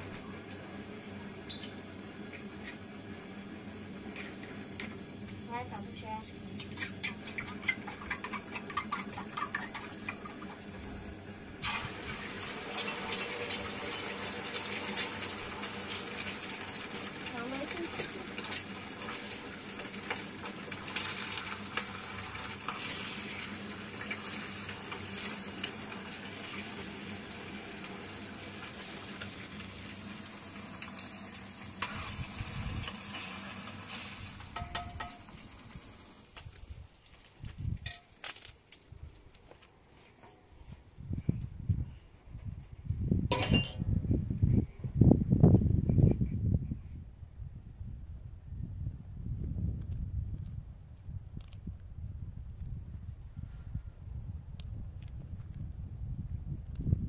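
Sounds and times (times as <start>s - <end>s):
food sizzling in hot oil: 3.5s - 36.6s
utensil clicking and scraping in pan: 6.5s - 10.7s, 12.7s - 26.6s.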